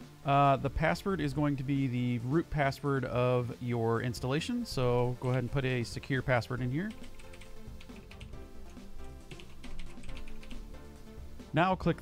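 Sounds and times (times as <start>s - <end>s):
background music: 0.0s - 12.0s
computer keyboard typing: 6.8s - 10.7s.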